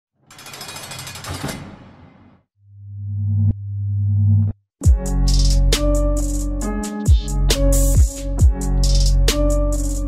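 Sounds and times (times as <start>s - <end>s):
harsh rapid rattling burst: 0.3s - 1.7s.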